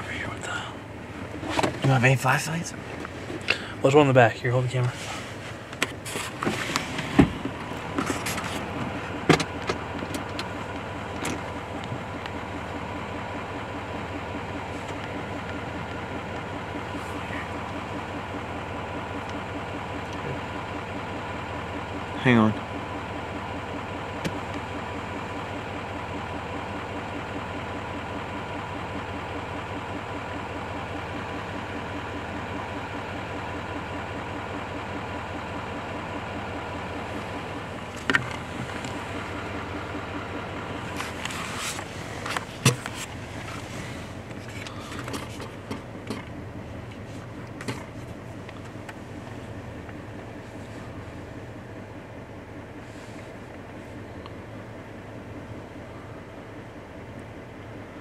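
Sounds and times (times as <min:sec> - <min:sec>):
truck engine idling: 0:00.0 - 0:58.0
sharp clicks and knocks: 0:38.0 - 0:39.0, 0:41.0 - 0:43.1, 0:44.3 - 0:46.4, 0:47.5 - 0:49.0.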